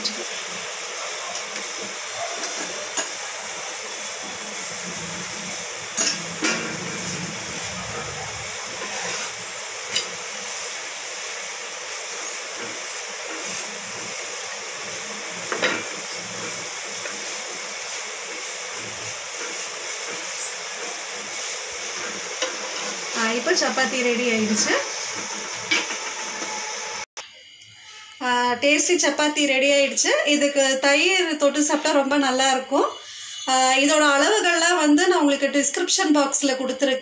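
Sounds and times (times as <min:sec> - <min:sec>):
oil sizzling in a pan: 0:00.0 - 0:27.2, 0:29.6 - 0:36.9.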